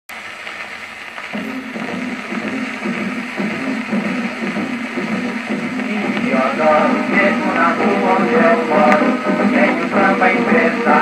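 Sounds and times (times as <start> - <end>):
record surface hiss and crackle: 0.1 - 11.0
samba band music: 1.3 - 11.0.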